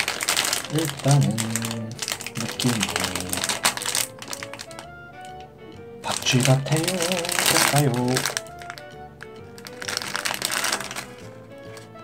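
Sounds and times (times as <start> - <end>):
foil wrapper crinkling: 0.0 - 5.4, 6.0 - 12.0
background music: 0.0 - 12.0.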